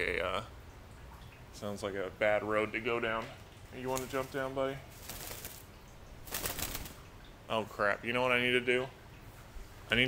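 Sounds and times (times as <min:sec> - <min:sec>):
bird wings rustling: 0:03.8 - 0:07.1
flurry of wingbeats: 0:03.9 - 0:07.1.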